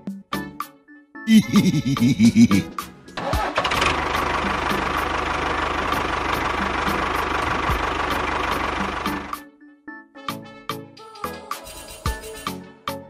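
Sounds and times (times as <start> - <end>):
tractor engine idling: 2.6 - 9.4.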